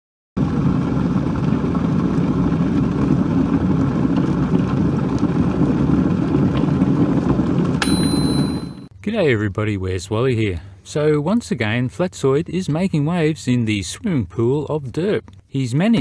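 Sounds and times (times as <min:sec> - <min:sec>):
loud rumbling noise: 0:00.4 - 0:07.8
steady high tone: 0:07.8 - 0:08.9.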